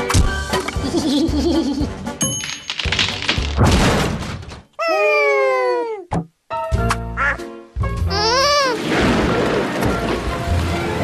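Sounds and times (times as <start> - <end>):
cartoon music: 6.8 - 8.8.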